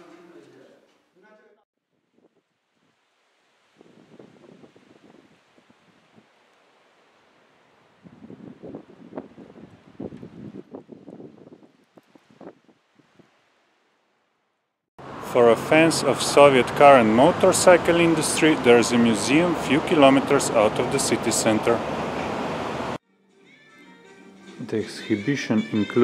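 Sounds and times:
wind buffeting microphone: 0:03.7 - 0:06.3, 0:07.9 - 0:13.4.

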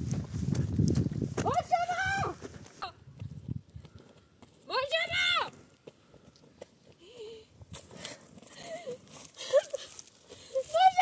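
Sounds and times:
woman sobbing: 0:08.5 - 0:10.7
dry leaves crackling: 0:09.1 - 0:11.0.

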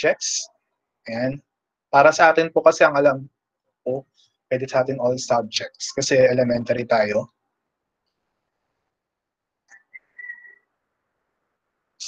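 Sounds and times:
faint high whistle-like tone: 0:09.7 - 0:10.7.

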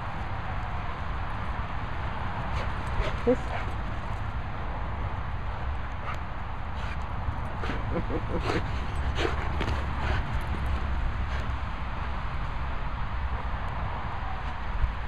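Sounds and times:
dog paws thudding on grass: 0:07.6 - 0:11.8.

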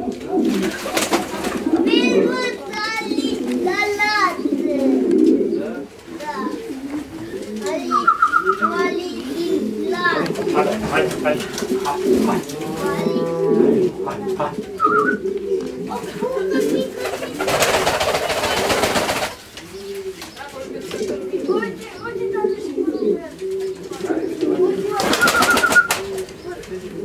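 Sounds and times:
pigeons cooing: 0:00.0 - 0:27.0
higher voice-like bird calls: 0:05.5 - 0:10.6, 0:11.6 - 0:20.5, 0:21.5 - 0:27.0.

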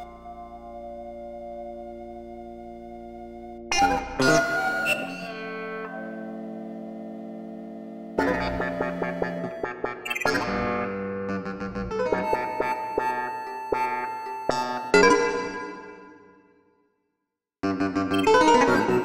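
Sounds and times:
instrumental music: 0:00.0 - 0:16.2, 0:17.6 - 0:19.0.

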